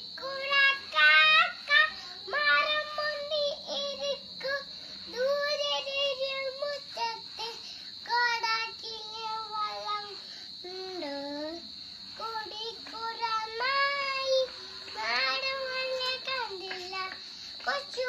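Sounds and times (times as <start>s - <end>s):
young boy singing: 0.0s - 18.0s.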